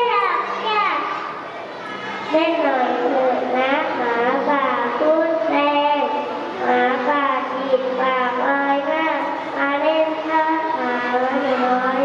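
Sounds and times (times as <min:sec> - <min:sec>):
child speaking: 0:00.0 - 0:01.4, 0:02.3 - 0:12.0.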